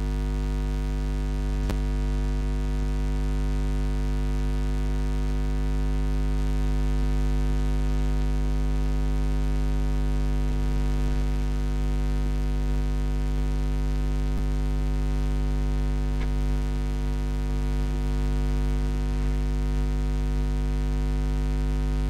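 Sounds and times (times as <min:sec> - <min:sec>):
electrical mains hum: 0:14.2 - 0:19.5.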